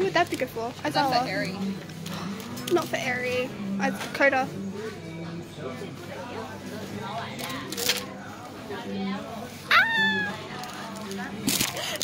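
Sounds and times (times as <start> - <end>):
person squealing: 9.7 - 10.4.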